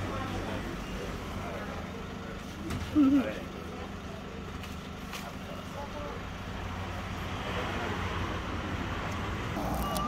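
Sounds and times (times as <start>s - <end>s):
broad background noise: 0.0s - 10.0s
low engine rumble: 0.0s - 10.0s.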